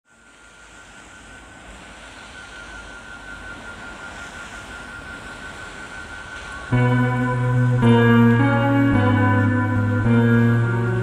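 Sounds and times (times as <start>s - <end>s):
steady rushing noise: 0.0s - 11.0s
high held tone: 0.4s - 11.0s.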